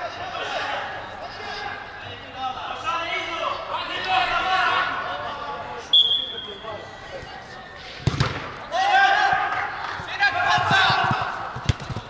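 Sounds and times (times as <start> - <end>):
players shouting: 0.0 - 12.0
referee's whistle blast: 5.9 - 6.8
football kicked with a thud: 8.0 - 8.4.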